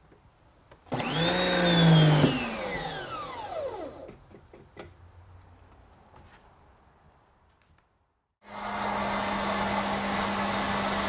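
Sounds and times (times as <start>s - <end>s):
pressure washer motor whining: 0.9s - 4.1s, 8.4s - 11.0s.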